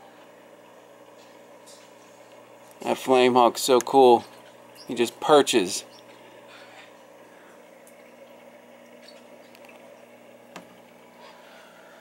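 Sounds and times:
aquarium pumps humming: 0.0 - 12.0.

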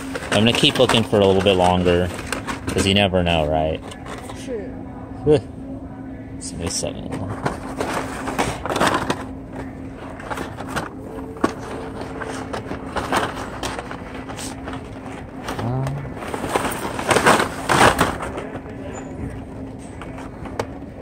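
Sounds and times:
plastic packaging crinkling and clacking: 0.0 - 4.4, 7.1 - 20.8
steady low hum: 0.0 - 21.0.

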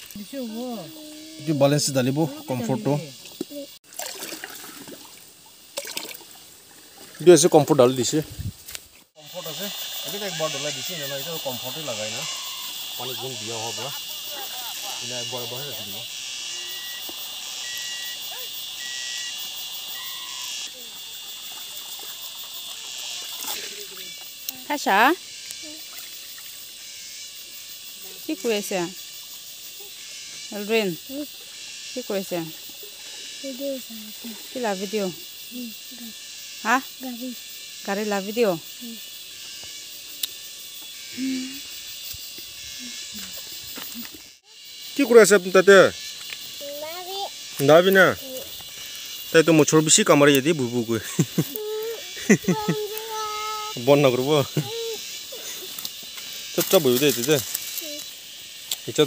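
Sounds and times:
insect chorus buzzing: 0.0 - 59.0
person calling out: 2.2 - 3.1
water splashing in a basin: 3.2 - 7.4, 25.8 - 26.6
whistle-like tone: 16.6 - 17.0, 17.6 - 19.3, 19.9 - 20.5.

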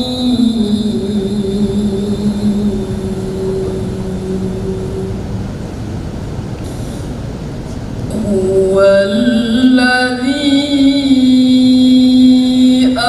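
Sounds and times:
woman reciting in long note: 0.0 - 7.2, 8.0 - 13.0
low rumble: 0.0 - 9.8.

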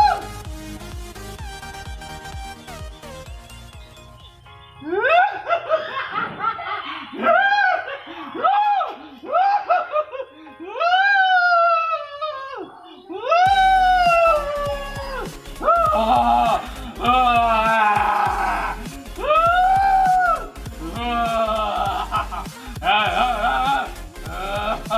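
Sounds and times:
backing music with deep beat: 0.0 - 4.9, 13.3 - 24.9
swooping laugh-like sound effect: 4.8 - 10.8, 20.0 - 24.9.

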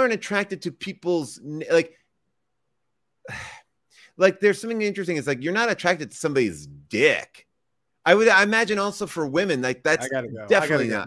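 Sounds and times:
man sighing into microphone: 3.3 - 3.7.

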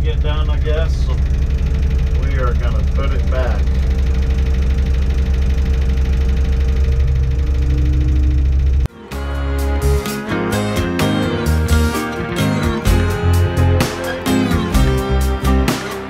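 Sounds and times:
diesel engine running: 0.0 - 16.0
strummed guitar music: 8.9 - 16.0.

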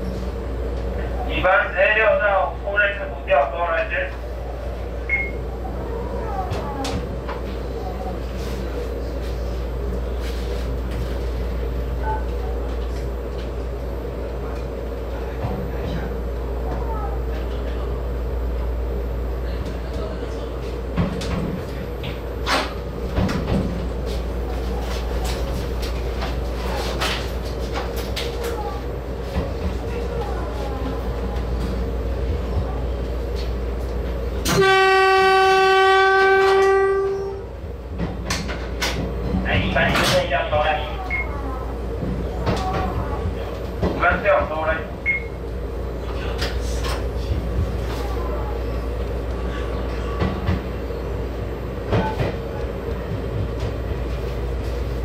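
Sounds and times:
train running hum: 0.0 - 55.0
train horn blast: 34.4 - 37.5.

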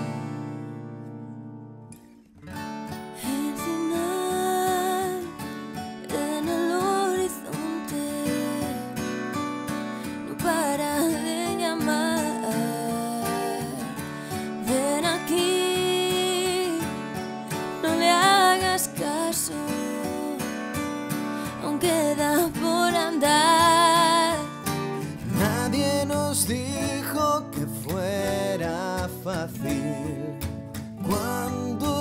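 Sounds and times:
strummed acoustic guitar: 0.0 - 32.0
person singing: 3.2 - 5.4, 6.0 - 9.0, 10.1 - 20.6, 21.2 - 32.0.

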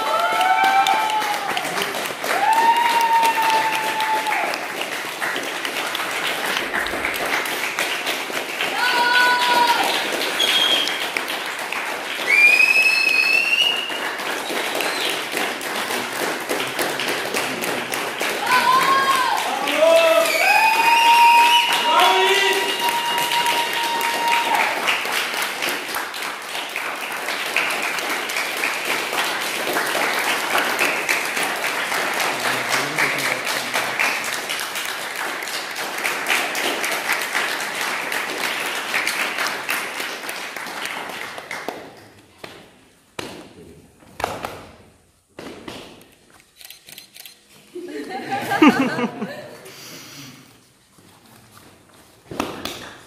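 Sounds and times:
voices cheering: 0.0 - 4.6, 8.7 - 10.1, 18.4 - 24.9
group applauding: 0.0 - 42.8, 47.9 - 50.5, 52.3 - 53.0.

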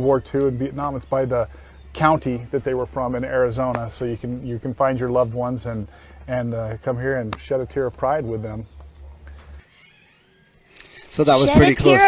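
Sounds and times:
low background hum: 0.0 - 12.0
person speaking: 11.0 - 12.0.

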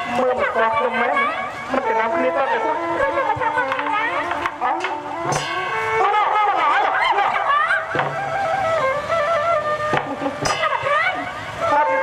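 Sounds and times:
ensemble wavering melody: 0.0 - 12.0
sharp percussion strikes: 3.9 - 8.8, 9.9 - 11.0.

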